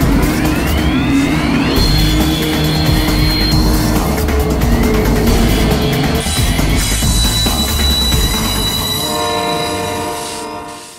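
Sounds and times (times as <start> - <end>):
freight train rumble: 0.0 - 10.9
locomotive air horn chord: 1.8 - 10.9.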